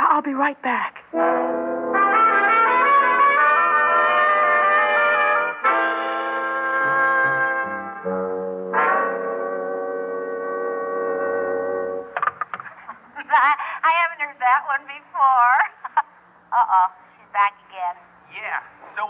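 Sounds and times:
brass chords playing: 0:01.1 - 0:12.2.

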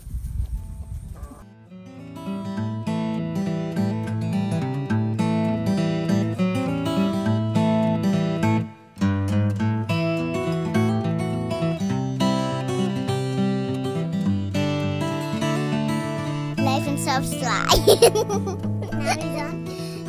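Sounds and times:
strummed acoustic guitar chords: 0:01.5 - 0:20.0.

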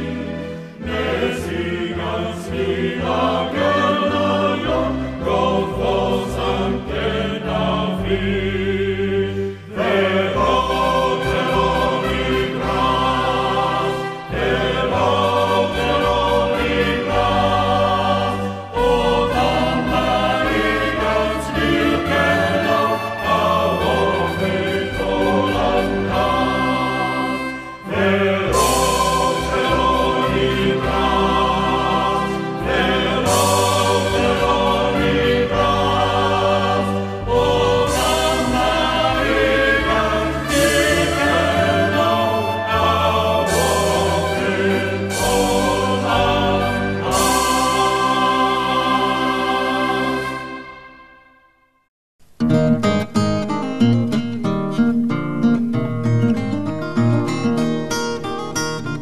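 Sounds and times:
choir singing sustained chords: 0:00.0 - 0:51.6.

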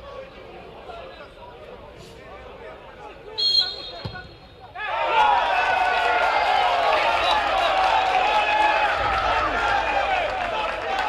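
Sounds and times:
players and crowd voices: 0:00.0 - 0:11.0
pea whistle blast: 0:03.4 - 0:04.1.

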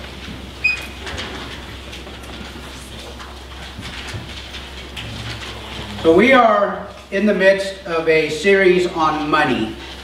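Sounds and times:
low electrical hum: 0:00.0 - 0:10.0
pages rustling: 0:01.5 - 0:06.0.

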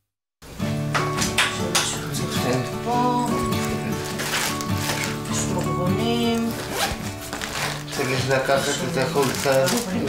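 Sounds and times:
background music: 0:00.5 - 0:10.0
bag being handled: 0:03.3 - 0:10.0
backpack zipper being pulled: 0:04.1 - 0:05.6, 0:06.4 - 0:08.1.

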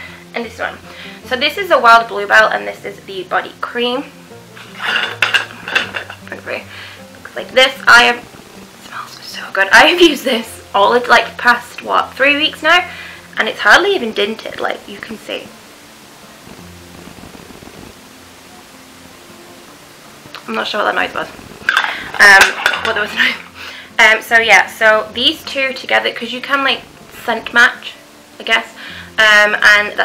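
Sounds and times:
steady background hiss: 0:00.0 - 0:30.0
faint low droning hum: 0:00.3 - 0:29.4
jar lid unscrewing scraping: 0:04.6 - 0:06.4.

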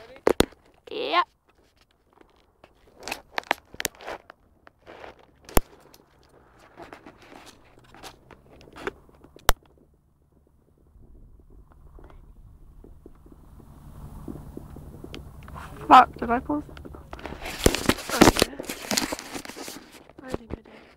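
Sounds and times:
phone handling rustling and crunching: 0:01.4 - 0:09.8, 0:16.6 - 0:20.9
low even rumble: 0:05.3 - 0:20.9.

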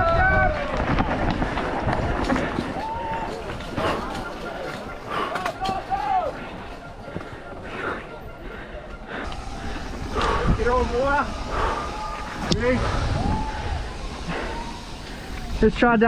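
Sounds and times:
spectators shouting and cheering: 0:00.0 - 0:06.7, 0:09.2 - 0:15.6
bike rattling on dirt trail: 0:00.0 - 0:16.0
bike tyre noise: 0:00.0 - 0:16.0
wind rushing: 0:09.2 - 0:15.8.

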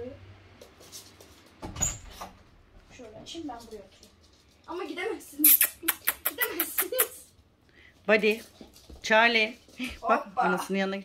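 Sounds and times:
puppies scuffling on floor: 0:00.5 - 0:05.4, 0:07.9 - 0:10.8
puppy high squeak: 0:05.4 - 0:07.2.

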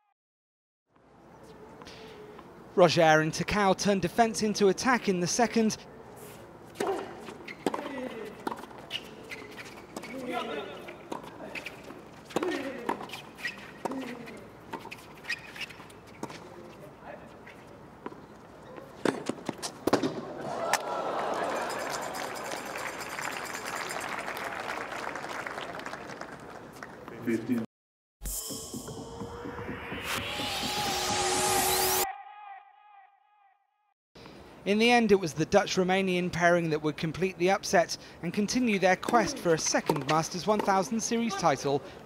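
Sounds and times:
racquets striking tennis ball: 0:06.7 - 0:16.5, 0:19.0 - 0:20.8, 0:39.0 - 0:41.2
crowd applauding: 0:20.4 - 0:27.6.

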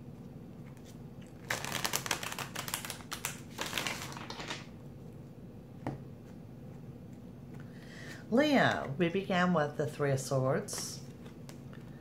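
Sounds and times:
cards being shuffled: 0:00.6 - 0:04.7.

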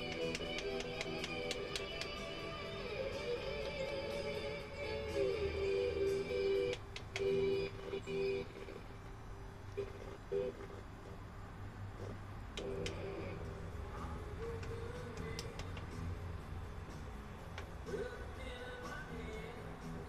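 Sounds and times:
music through car speakers: 0:00.0 - 0:09.0, 0:12.6 - 0:20.0.

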